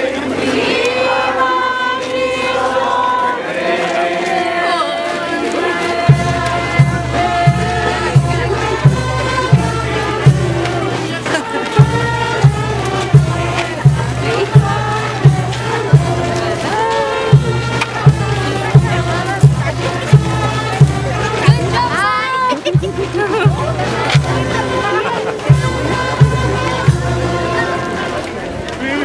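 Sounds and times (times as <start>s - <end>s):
crowd singing a hymn: 0.0s - 29.0s
steady drum beat: 0.6s - 29.0s.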